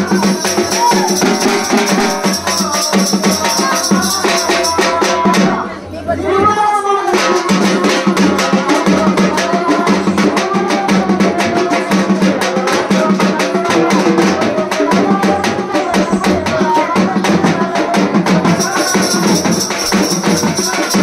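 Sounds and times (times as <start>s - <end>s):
frame drum beating fast: 0.0s - 5.6s, 7.1s - 21.0s
music: 0.0s - 21.0s.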